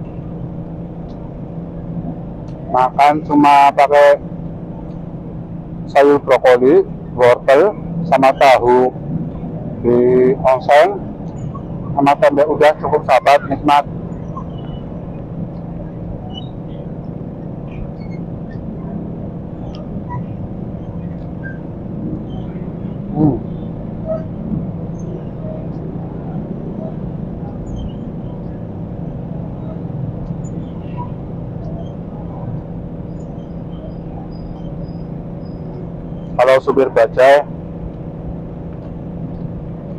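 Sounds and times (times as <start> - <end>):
street traffic hum: 0.0 - 39.9.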